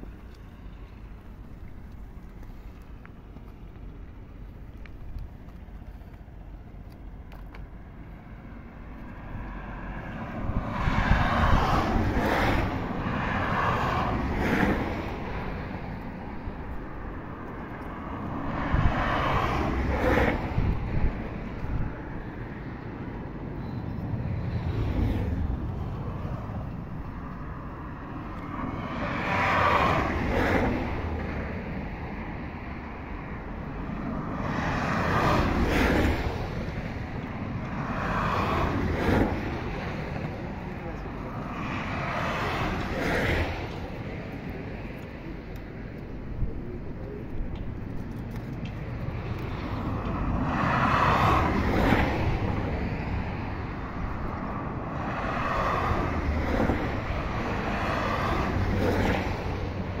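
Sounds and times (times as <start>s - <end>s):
vehicles passing on highway: 0.0s - 60.0s
wind on microphone: 9.2s - 23.5s.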